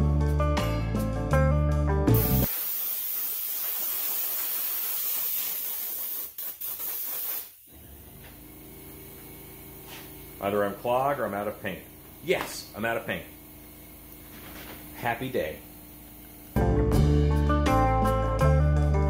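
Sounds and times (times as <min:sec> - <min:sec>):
background music: 0:00.0 - 0:02.4, 0:16.6 - 0:19.0
airbrush spraying hiss: 0:02.1 - 0:07.7, 0:08.8 - 0:10.8.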